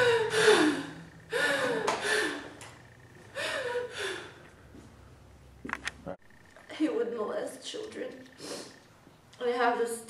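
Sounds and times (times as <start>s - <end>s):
woman gasping heavily: 0.0s - 2.5s, 3.3s - 4.4s.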